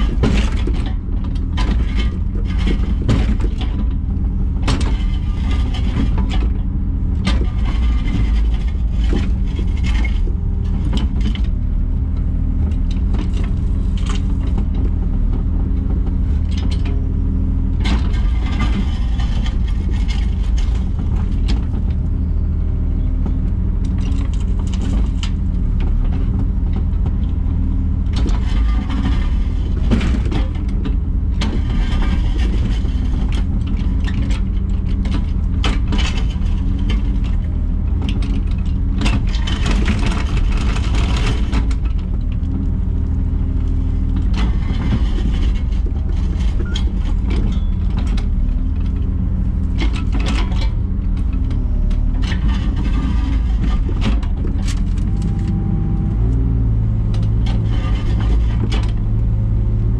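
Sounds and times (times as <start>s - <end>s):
diesel engine running under load: 0.0s - 59.9s
hydraulics working: 0.0s - 59.9s
bucket scraping and clattering in soil: 4.7s - 6.6s, 7.2s - 11.6s, 17.8s - 22.5s, 28.2s - 30.8s, 31.4s - 55.2s, 57.2s - 59.1s.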